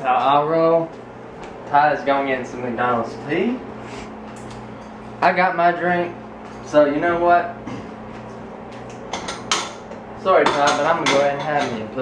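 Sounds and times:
low steady hum: 0:00.0 - 0:12.0
dishes clinking and knocking: 0:09.1 - 0:11.8.

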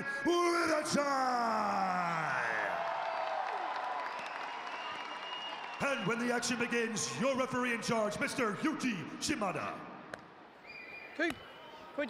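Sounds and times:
arena crowd hum: 0:00.0 - 0:12.0.

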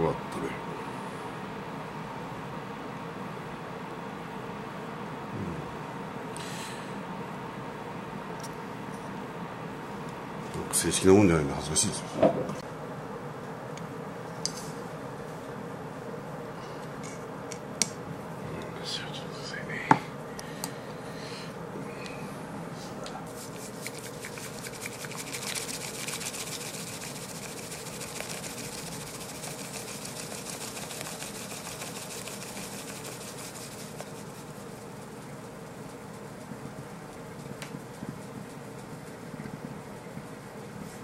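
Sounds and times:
room hum: 0:00.0 - 0:41.0
tea whisk swishing in bowl: 0:23.2 - 0:41.0.

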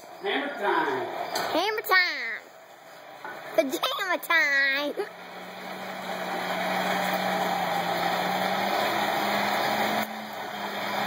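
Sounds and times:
machine roar with low hum: 0:00.0 - 0:11.0.

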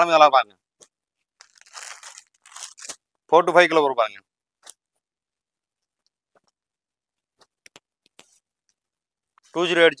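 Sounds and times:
fabric rustling and crinkling: 0:01.2 - 0:03.0.

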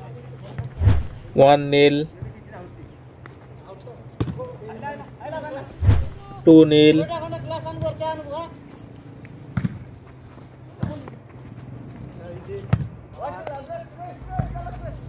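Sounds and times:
players shouting: 0:05.2 - 0:08.4.

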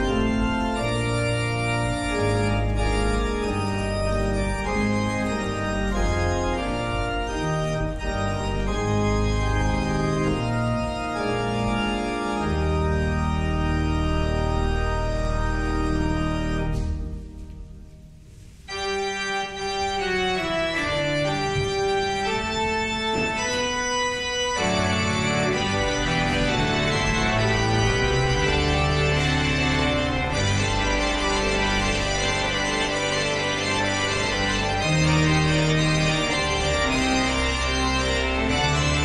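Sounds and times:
church organ playing: 0:00.0 - 0:39.0.

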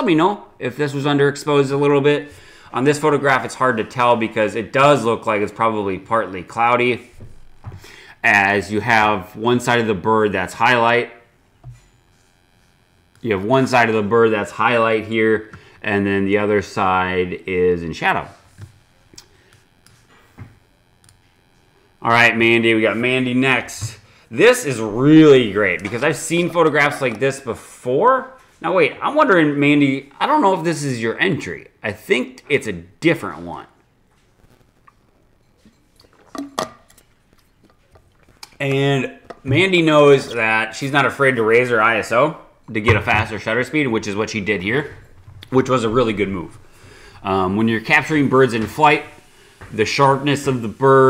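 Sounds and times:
faint electrical hum: 0:00.0 - 0:51.0
cup clinking: 0:35.5 - 0:37.1
cup knocking on desk: 0:36.3 - 0:36.8
man's voice: 0:38.6 - 0:46.6.

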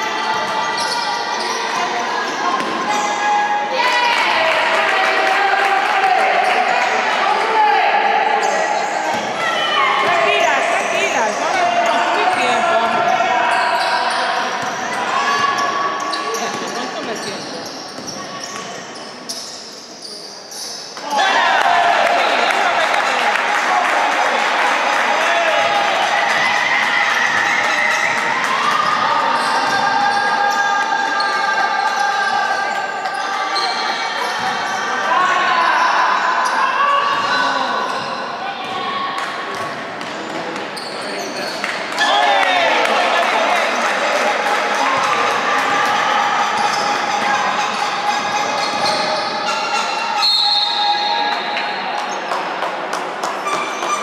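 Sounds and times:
players calling: 0:40.7 - 0:52.2.

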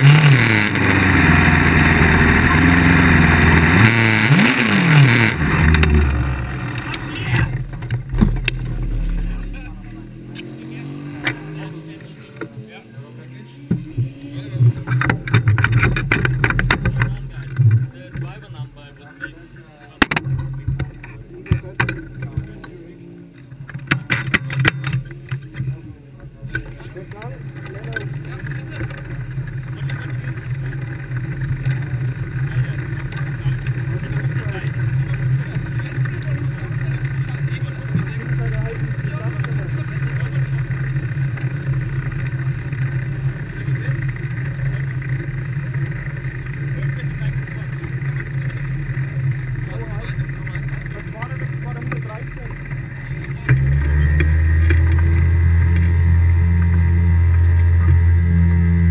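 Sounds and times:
race car engine idling: 0:00.0 - 0:58.9.

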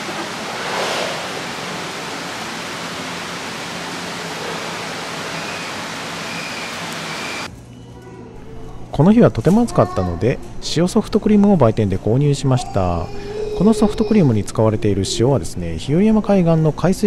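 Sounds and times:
water rushing in a pool: 0:00.0 - 0:07.5.

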